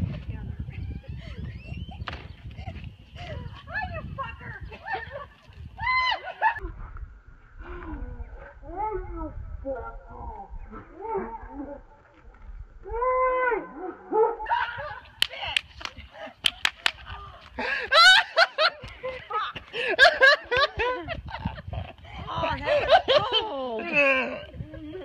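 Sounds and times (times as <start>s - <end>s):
people laughing: 15.8s - 25.0s.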